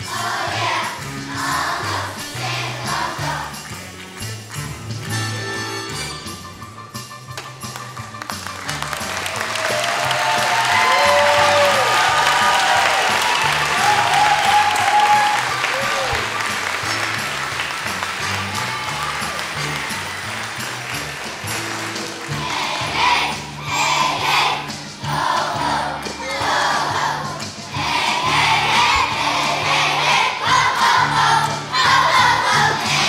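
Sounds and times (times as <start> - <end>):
children singing: 0.0 - 3.6, 22.2 - 33.0
backing track music: 0.0 - 33.0
audience applause and cheering: 7.4 - 33.0.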